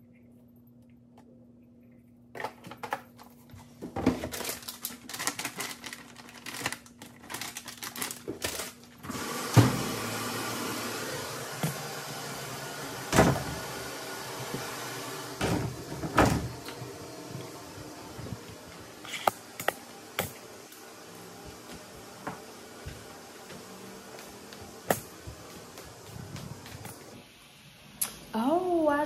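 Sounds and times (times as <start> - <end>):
detergent bag rustling and clicking: 2.4 - 9.1
washing machine filling with water: 9.0 - 19.0
closet door thudding shut: 13.1 - 13.6, 15.4 - 16.6.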